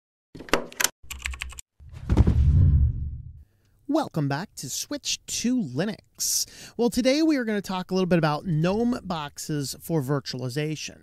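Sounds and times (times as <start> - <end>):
rapid keyboard key clicks: 0.7 - 1.6
deep heavy hit: 2.0 - 3.4.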